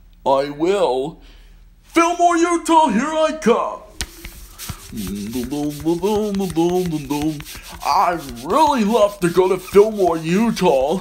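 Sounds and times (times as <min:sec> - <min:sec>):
scratchy rubbing noise: 0:03.9 - 0:11.0
person humming: 0:04.8 - 0:08.6.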